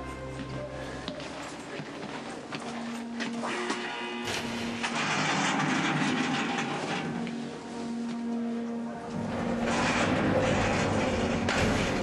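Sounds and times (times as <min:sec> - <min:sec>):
jail cell door sliding on track: 0:04.3 - 0:07.5, 0:09.2 - 0:12.0.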